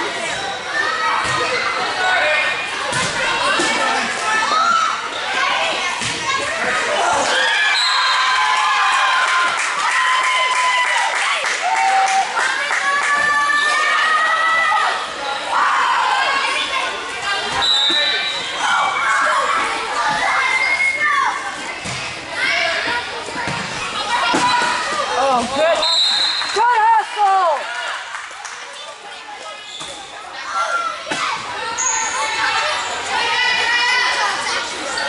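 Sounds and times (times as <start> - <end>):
voices echoing in a gymnasium: 0.0 - 35.0
ball bouncing on court: 23.4 - 24.8.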